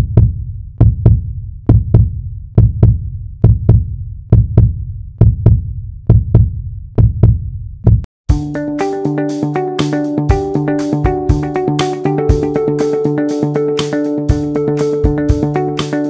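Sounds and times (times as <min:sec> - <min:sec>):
heartbeat thumps: 0:00.0 - 0:08.5, 0:14.3 - 0:15.6.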